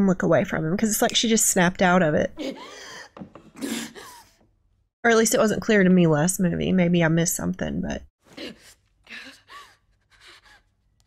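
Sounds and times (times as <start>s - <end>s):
woman gasping for breath: 8.3s - 10.6s.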